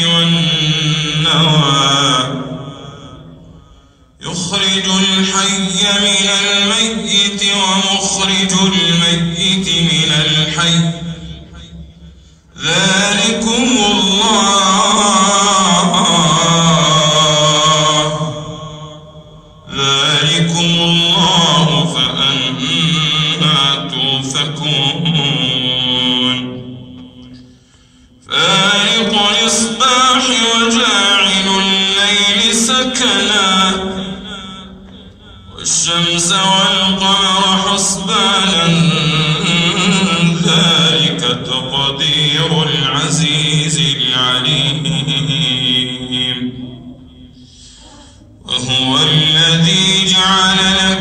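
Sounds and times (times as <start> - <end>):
man reciting melodically: 0.0 - 51.0.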